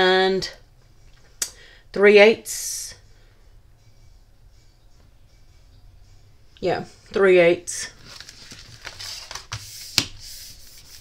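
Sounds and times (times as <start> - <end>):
paper rustling: 8.0 - 11.0.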